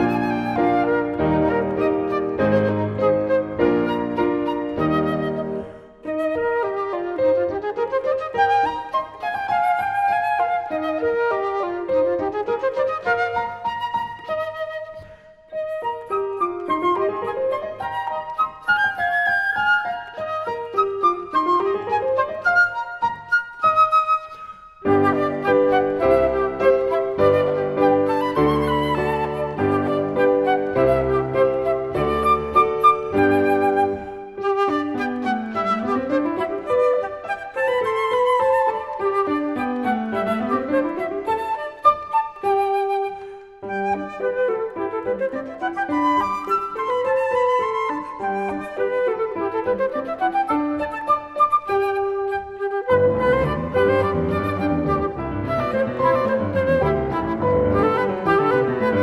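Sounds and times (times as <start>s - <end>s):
flute: 0.0s - 59.0s
piano: 0.0s - 59.0s.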